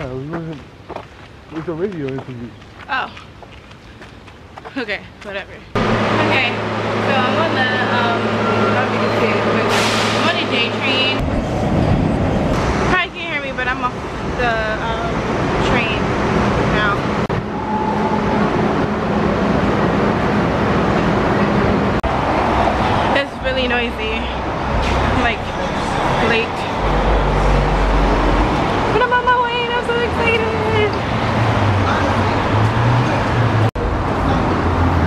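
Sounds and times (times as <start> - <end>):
city traffic noise: 0.0 - 35.0
people's voices: 1.5 - 3.2, 4.7 - 11.2, 12.9 - 17.1, 22.7 - 34.8
deep rumble: 5.6 - 35.0.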